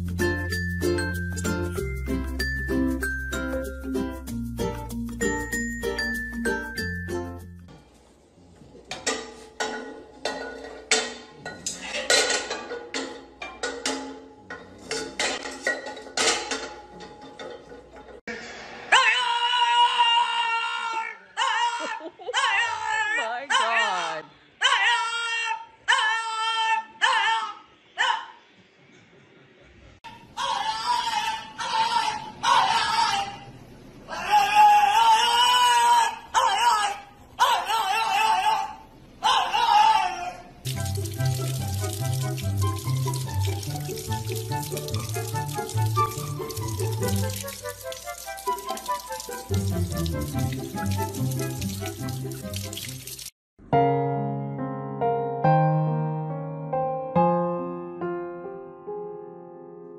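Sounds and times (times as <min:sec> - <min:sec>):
dog howling: 0:18.9 - 0:28.2, 0:30.4 - 0:33.5, 0:34.1 - 0:40.5
dog wavering howls: 0:23.8 - 0:27.6, 0:30.4 - 0:33.5, 0:34.1 - 0:40.5
running tap water: 0:40.7 - 0:53.3.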